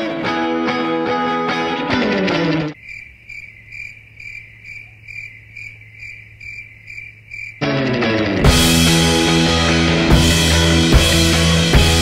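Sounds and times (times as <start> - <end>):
music: 0.0 - 2.8, 7.6 - 12.0
cricket chirping sound effect: 2.8 - 7.8.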